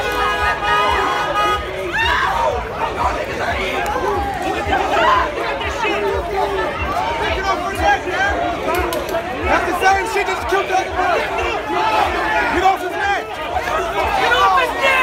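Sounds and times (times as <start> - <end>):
crowd shouting and talking: 0.0 - 15.0.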